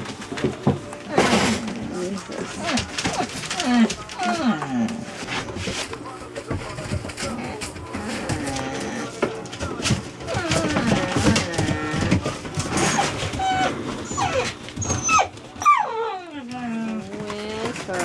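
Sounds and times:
puppies yelping and whining: 0:10.2 - 0:17.2.

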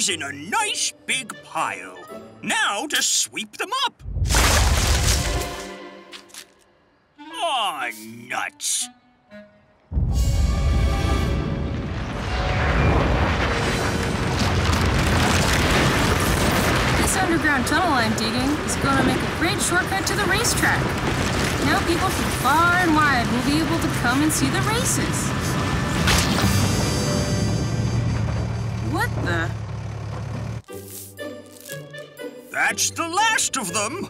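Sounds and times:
background music: 0:00.0 - 0:03.6, 0:05.0 - 0:13.0, 0:30.7 - 0:34.0
oil splashing crash: 0:04.2 - 0:05.6
tunneling machine rumble with crackling: 0:11.7 - 0:30.7.

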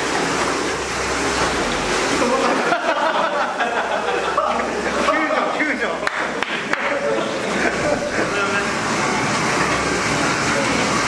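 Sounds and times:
water splashing in a pool: 0:00.0 - 0:11.0
people talking: 0:04.3 - 0:08.8, 0:10.4 - 0:11.0.

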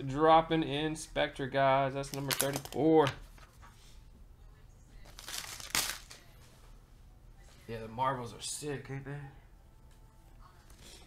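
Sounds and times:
foil wrapper crinkling: 0:05.0 - 0:06.2.

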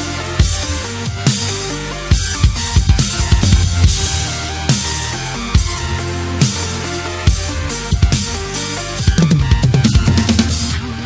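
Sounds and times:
electronic backing music: 0:00.0 - 0:11.0
drum kit fast fill: 0:02.1 - 0:10.8.

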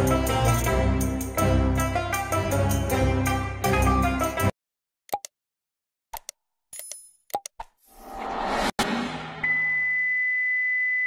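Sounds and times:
click sound effects: 0:05.1 - 0:05.3, 0:06.2 - 0:07.8.

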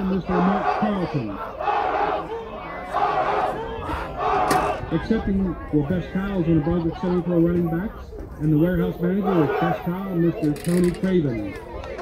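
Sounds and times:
team shouting in unison: 0:00.0 - 0:05.0, 0:09.1 - 0:09.9.

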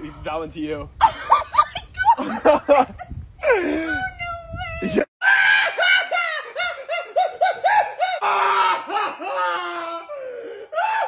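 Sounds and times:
man comedic sobbing and wailing: 0:04.8 - 0:11.0.

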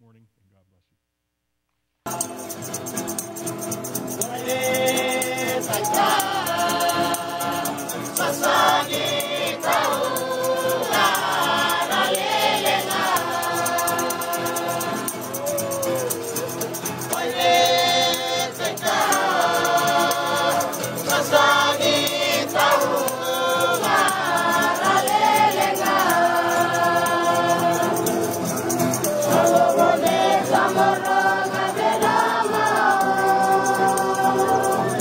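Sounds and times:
choir singing a hymn: 0:02.1 - 0:35.0.

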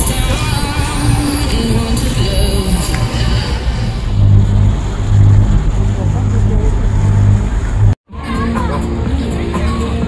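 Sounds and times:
boat engine drone: 0:00.0 - 0:10.0.

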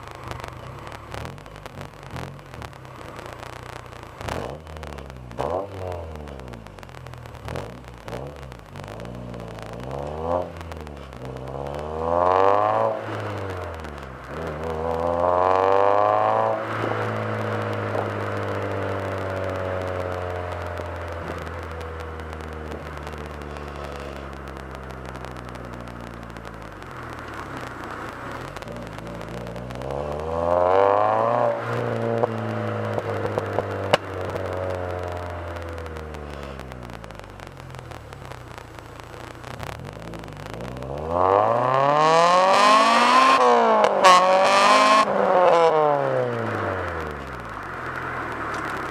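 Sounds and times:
car engine idling and revving: 0:00.0 - 0:48.9.

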